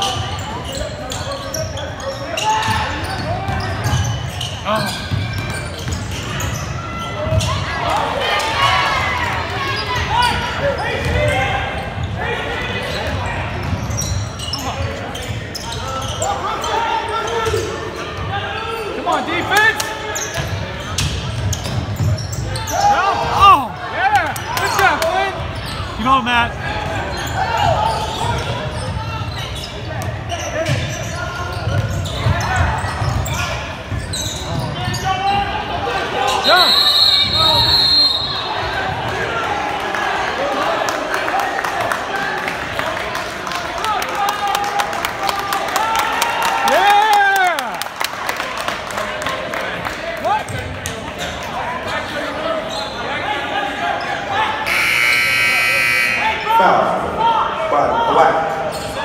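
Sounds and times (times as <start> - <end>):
basketball bouncing on court: 2.6 - 7.6, 10.0 - 12.2, 29.9 - 35.4
referee's whistle: 36.3 - 38.6, 54.6 - 56.5.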